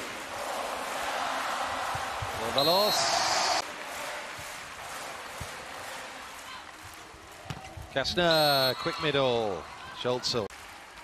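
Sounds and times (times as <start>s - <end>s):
crowd cheering: 0.0s - 7.4s, 8.1s - 11.0s.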